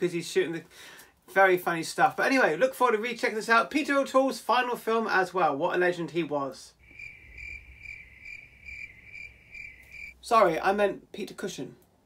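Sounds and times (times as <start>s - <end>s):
crickets chirping: 6.8s - 10.2s.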